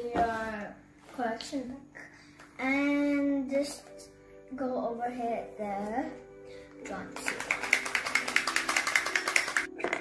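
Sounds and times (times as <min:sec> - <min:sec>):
correction pen ball rattling: 0:07.2 - 0:10.0.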